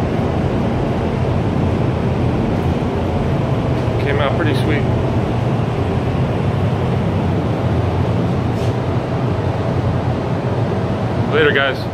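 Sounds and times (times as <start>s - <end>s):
ventilation fans humming: 0.0s - 11.9s.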